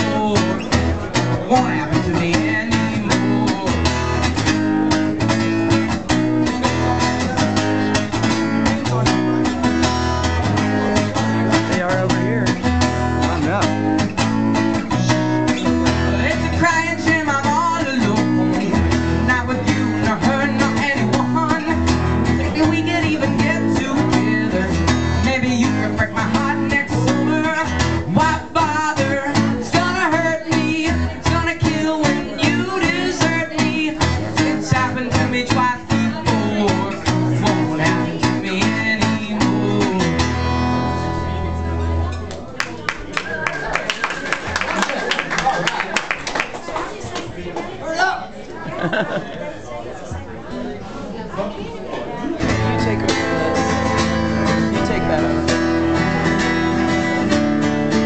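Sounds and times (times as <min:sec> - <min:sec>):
young man singing: 0:00.0 - 0:13.9, 0:14.8 - 0:41.1, 0:52.4 - 0:57.3
acoustic guitar strumming: 0:00.0 - 0:42.3, 0:52.4 - 0:58.0.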